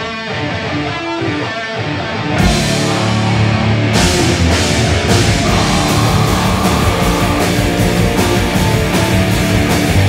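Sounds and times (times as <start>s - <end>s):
bass guitar: 0.0s - 10.0s
distorted electric guitars: 0.0s - 10.0s
drum kit: 2.3s - 10.0s.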